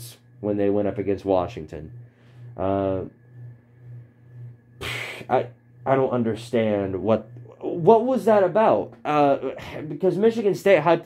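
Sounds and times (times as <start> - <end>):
ceiling fan humming: 0.0 - 11.0.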